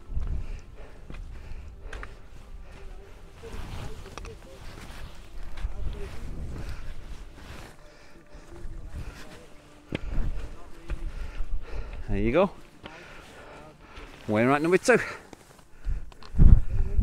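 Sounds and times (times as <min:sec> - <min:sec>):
wind buffeting microphone: 0:00.0 - 0:02.9, 0:15.8 - 0:17.0.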